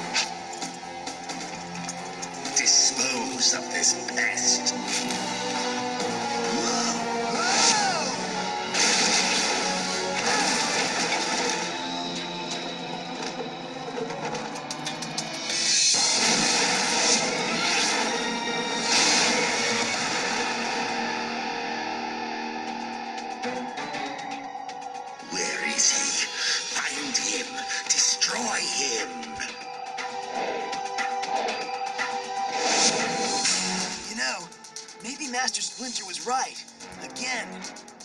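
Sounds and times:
orchestral action music: 0.0s - 38.0s.

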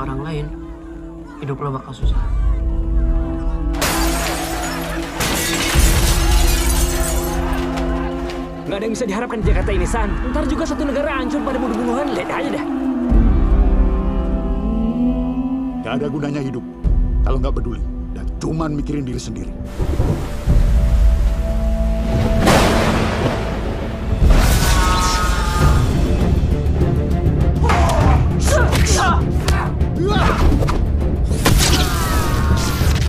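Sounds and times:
plate glass shattering: 3.8s - 7.6s
rain: 19.7s - 25.6s.

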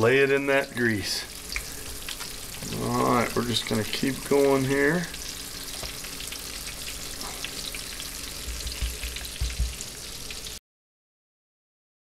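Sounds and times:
frying in hot oil sizzling: 0.0s - 10.6s
low thumps: 8.4s - 9.8s.

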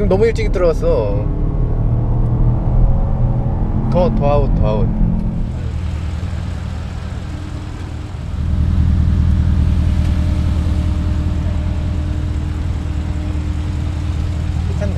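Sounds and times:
car engine idling: 0.0s - 14.9s.

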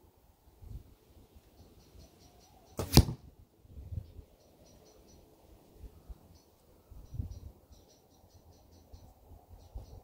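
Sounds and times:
arrow striking hay bale: 2.8s - 3.3s.

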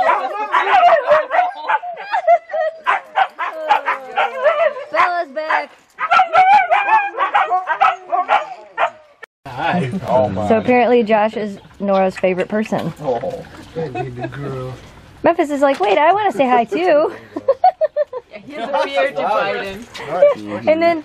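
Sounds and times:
dogs yipping and whining: 0.0s - 9.2s.

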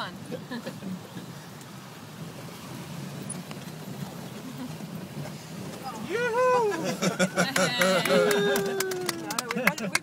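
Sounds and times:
jeep engine under load: 0.0s - 10.0s.

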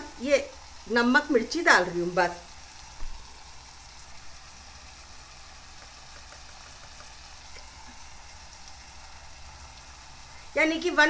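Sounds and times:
masala sizzling in a pot: 0.0s - 11.0s
faint ticks: 5.6s - 7.7s.

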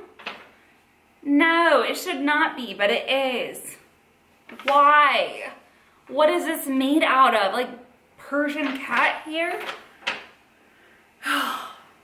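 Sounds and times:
woman gasping: 11.2s - 12.0s.

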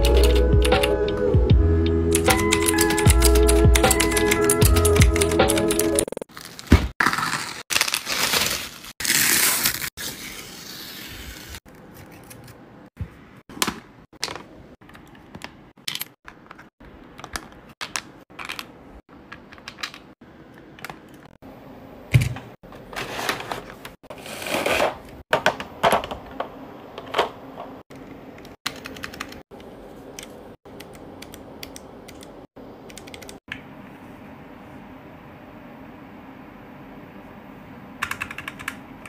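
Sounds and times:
mechanical keyboard clacking: 2.2s - 6.2s, 38.0s - 38.8s.

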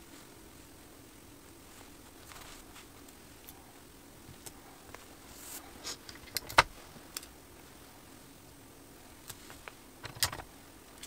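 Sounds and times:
paper rustling: 1.7s - 3.1s.

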